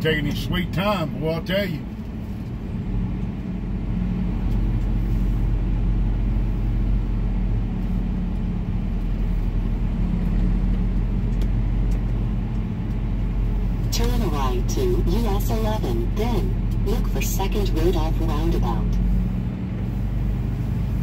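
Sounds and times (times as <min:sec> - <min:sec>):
diesel truck engine drone: 0:00.0 - 0:21.0.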